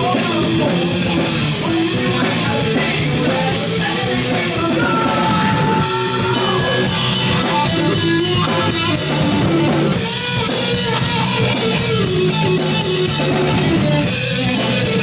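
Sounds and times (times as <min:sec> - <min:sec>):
bass guitar: 0:00.0 - 0:15.0
drum kit: 0:00.0 - 0:15.0
electric guitars: 0:00.0 - 0:15.0.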